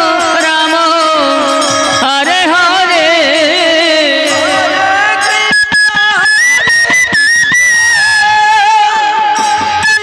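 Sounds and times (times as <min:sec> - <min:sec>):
drum strokes: 0:01.4 - 0:10.0.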